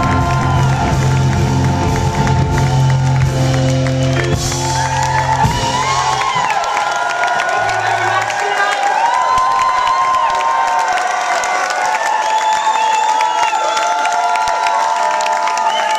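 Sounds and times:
audience cheering and clapping: 0.0 - 15.9.

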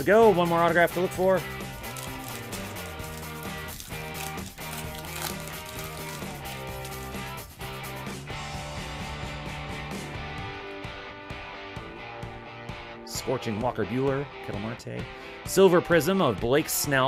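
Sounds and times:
background music with held notes: 0.0 - 17.0.

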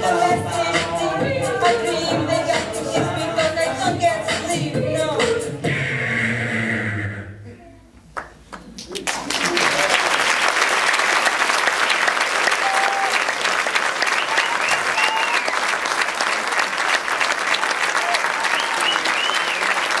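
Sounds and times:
audience applauding: 8.2 - 20.0
high cheers: 11.4 - 20.0.

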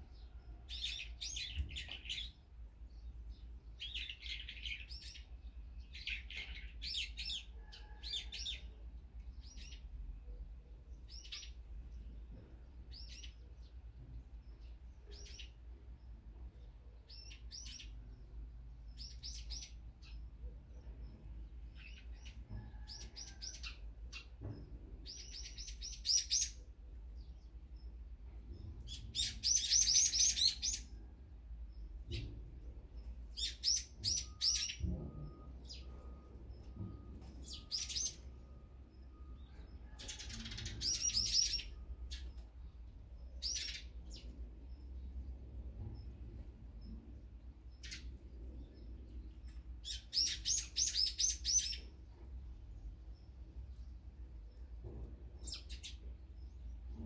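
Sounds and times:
low steady background hum: 0.0 - 57.0
small songbirds chirping: 0.0 - 57.0.

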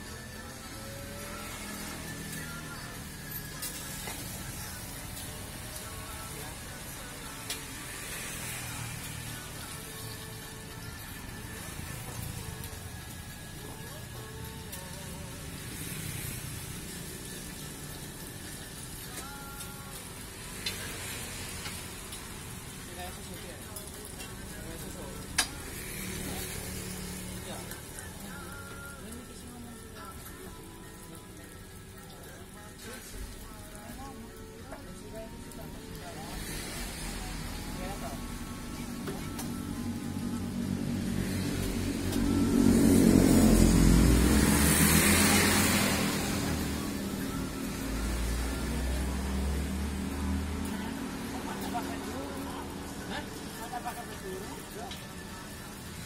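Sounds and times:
food sizzling in hot oil: 0.1 - 56.0.

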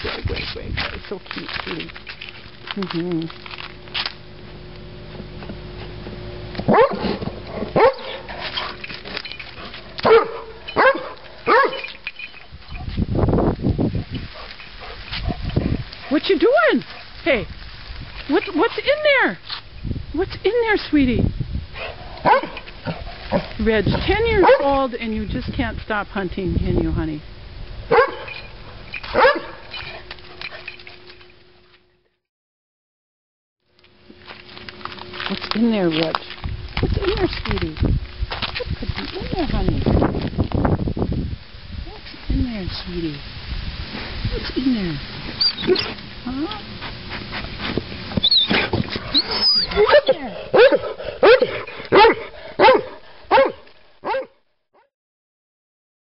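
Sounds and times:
paws scratching dirt and gravel: 0.0 - 19.8, 21.7 - 25.0, 27.9 - 31.9, 33.8 - 41.3, 42.0 - 54.3
dog barking: 6.7 - 8.3, 10.0 - 11.9, 22.2 - 22.6, 24.4 - 24.7, 27.9 - 28.4, 29.1 - 29.7, 49.6 - 54.9
dog whining and yelping: 45.4 - 46.0, 48.2 - 54.3.

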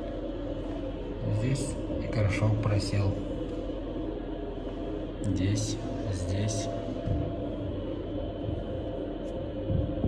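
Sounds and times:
faint music: 0.0 - 10.0
restroom background hum: 0.0 - 10.0.

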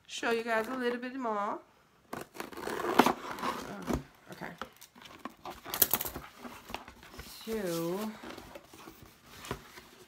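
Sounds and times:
packing tape ripping: 2.1 - 3.9
cardboard box being torn open: 2.1 - 4.1
cardboard flaps scraping: 5.2 - 10.0.

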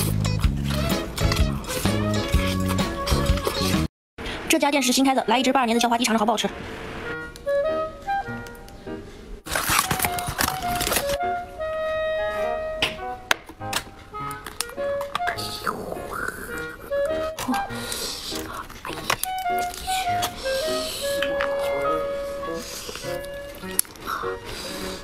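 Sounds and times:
packaging rustling and crinkling: 9.4 - 11.2.

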